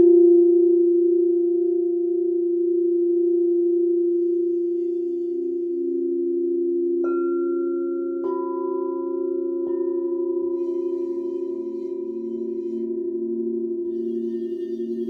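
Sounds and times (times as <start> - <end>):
lower pulsing tone: 0.0 - 8.3, 8.9 - 15.0
bowl struck with high ring: 0.0 - 15.0
singing bowls ringing: 0.0 - 15.0.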